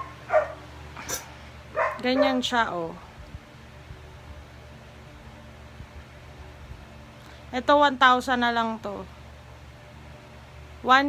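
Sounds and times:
dog barking: 0.0s - 0.6s, 1.8s - 2.5s.

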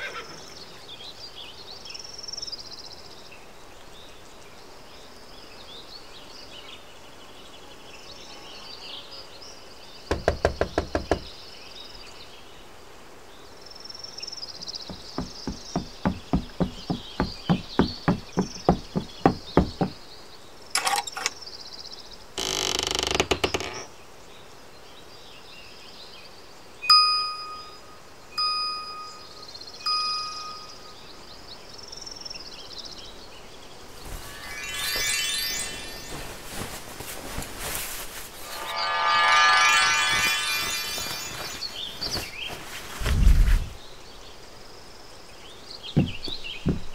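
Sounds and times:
loud sharp knocks: 10.1s - 11.3s, 14.9s - 20.0s, 46.0s - 46.9s
insects chirping: 13.7s - 24.0s, 26.5s - 43.1s
bell-like dings: 26.9s - 31.1s
rising shimmering glissando: 34.0s - 36.8s, 38.3s - 42.1s.

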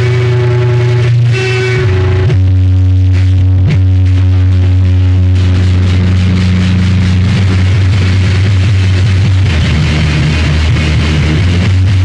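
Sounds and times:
heavy low drone: 0.0s - 12.0s
wall of distorted noise: 0.0s - 12.0s.

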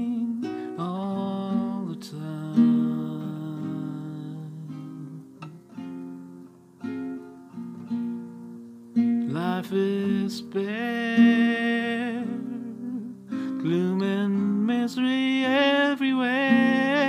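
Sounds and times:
classical guitar strumming slow chords: 0.0s - 17.0s.

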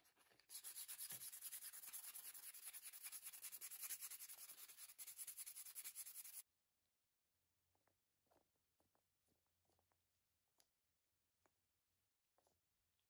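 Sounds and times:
scratchy sanding: 0.5s - 6.4s.

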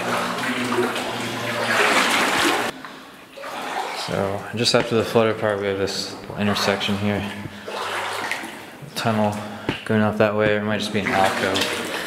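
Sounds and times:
wading through shallow water: 0.0s - 9.9s, 10.5s - 12.0s.

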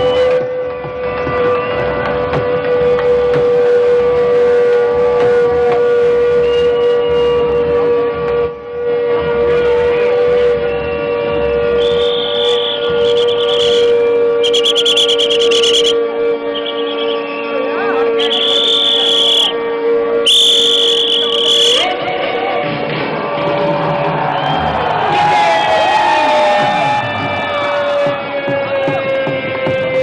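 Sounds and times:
shrill whistle blasts: 0.0s - 1.8s, 2.7s - 22.2s
long steady held note: 0.0s - 22.9s
crowd noise: 0.0s - 30.0s.

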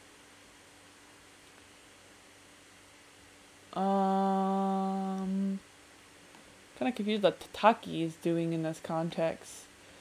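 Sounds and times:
person humming: 3.7s - 5.6s
person speaking: 3.8s - 5.6s, 6.8s - 9.7s.

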